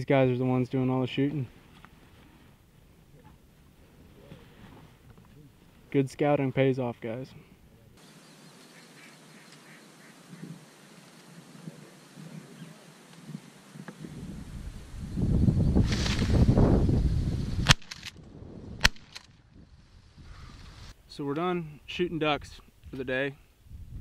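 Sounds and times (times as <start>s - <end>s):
ducks and geese calling: 8.1s - 13.0s
wind on microphone: 11.4s - 20.9s, 23.6s - 24.0s
sharp cracks: 15.8s - 16.6s, 17.6s - 19.5s.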